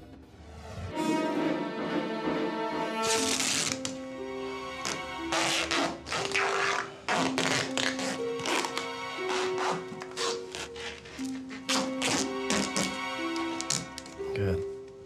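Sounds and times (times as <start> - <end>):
slow background music: 0.1 - 15.0
duct tape ripping off roll: 3.0 - 4.0, 4.8 - 14.2.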